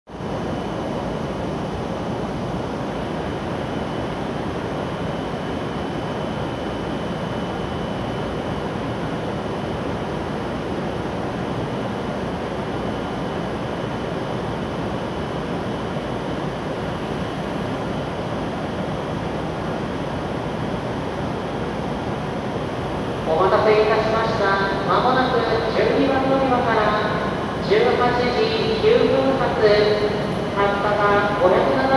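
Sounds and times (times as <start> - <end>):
steady noise beside train: 0.1 - 31.9.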